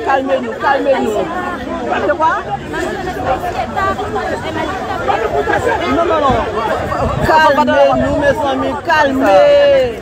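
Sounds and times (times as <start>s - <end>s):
several people talking agitatedly: 0.0s - 10.0s.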